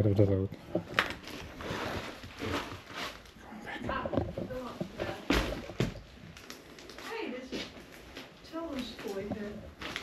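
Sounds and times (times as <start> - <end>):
rustling and scraping through debris: 0.6 - 10.0.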